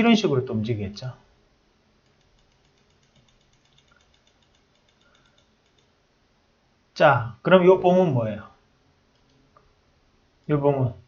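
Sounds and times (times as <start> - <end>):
mouse scroll wheel ticking: 2.0 - 6.0, 9.1 - 9.4.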